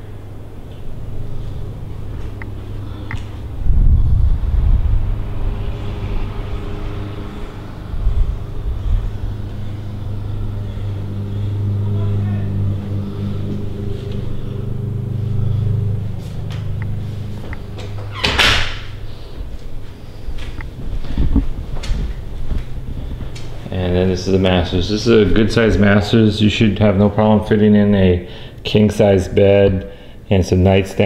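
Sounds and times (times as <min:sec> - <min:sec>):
steady low hum: 0:00.0 - 0:31.0
wind buffeting microphone: 0:01.0 - 0:11.9, 0:18.6 - 0:26.3.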